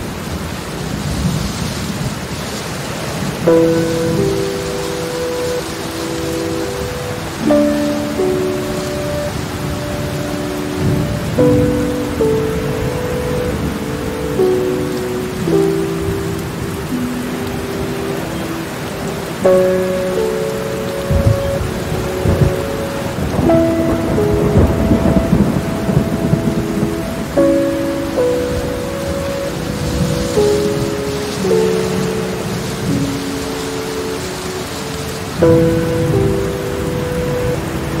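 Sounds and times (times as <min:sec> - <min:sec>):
heavy rain: 0:00.0 - 0:38.0
thunder rumbling: 0:00.0 - 0:38.0
soft music chords: 0:03.4 - 0:38.0.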